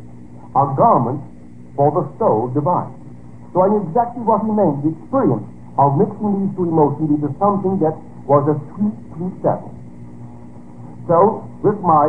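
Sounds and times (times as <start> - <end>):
low hum and hiss: 0.0 - 12.0
man speaking: 0.5 - 9.8, 11.0 - 12.0.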